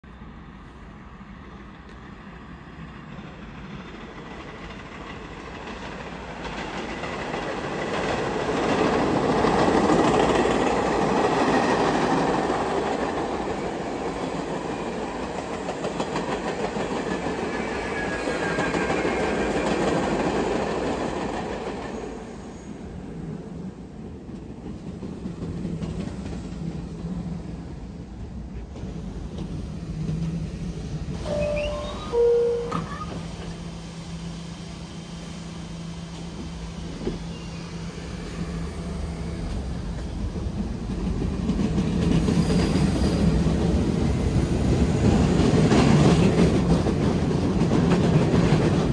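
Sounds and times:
subway train on tracks: 0.0 - 48.9.

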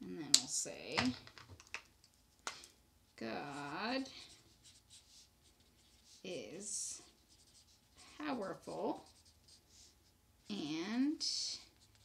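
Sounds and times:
marker scratching on paper: 3.4 - 10.7, 11.6 - 12.0.

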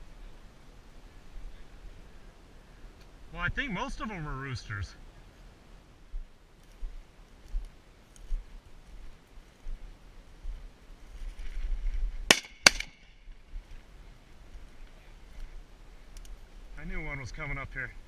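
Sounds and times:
footsteps through dry brush: 6.1 - 12.3
shotgun shots: 12.3 - 13.1.

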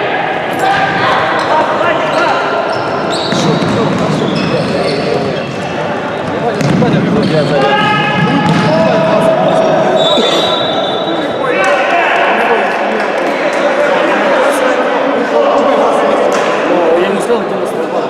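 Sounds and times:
players shouting: 0.0 - 16.8.

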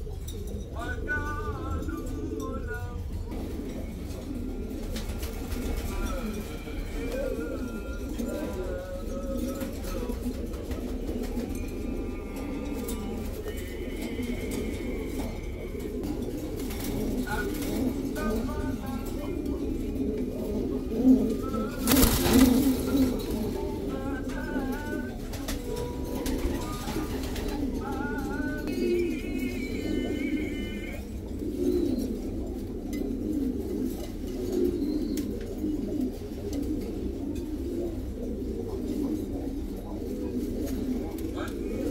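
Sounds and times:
pigeons cooing: 0.0 - 41.9.

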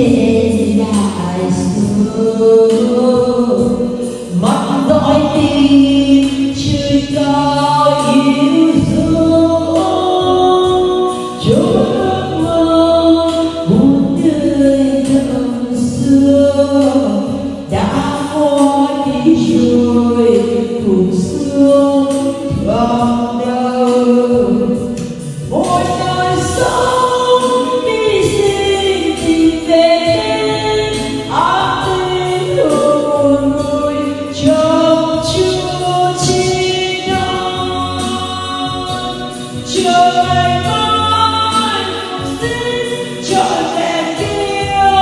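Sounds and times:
backing music: 0.0 - 45.0
woman singing into a microphone: 0.0 - 45.0.

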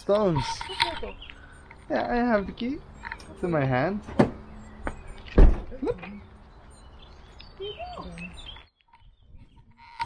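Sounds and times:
faint outdoor background: 0.0 - 10.0
heavy thump: 4.1 - 4.4, 5.4 - 5.7.

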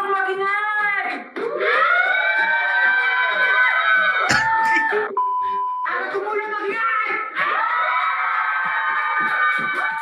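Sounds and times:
crowd yelling and cheering: 7.2 - 10.0.

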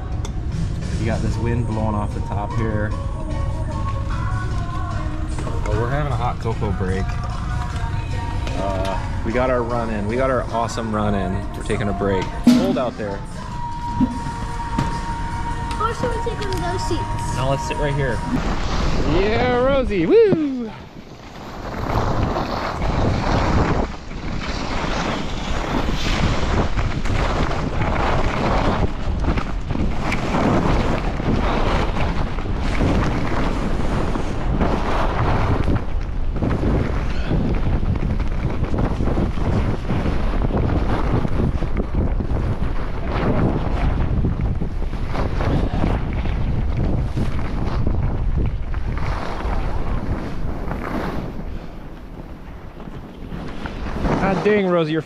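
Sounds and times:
wind on camera microphone: 0.0 - 55.0
skis scraping over snow: 15.8 - 55.0.

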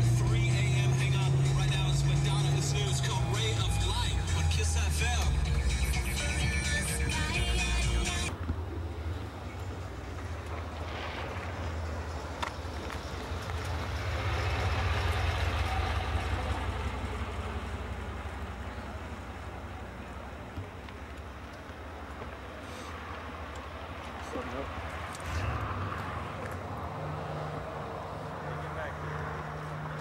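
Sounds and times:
car engines rumbling: 0.0 - 30.0
passing traffic hiss: 22.5 - 23.3.

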